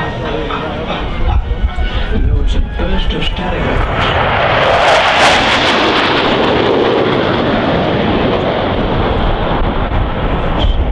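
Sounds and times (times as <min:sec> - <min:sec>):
jet fighters flying past: 0:00.0 - 0:10.9.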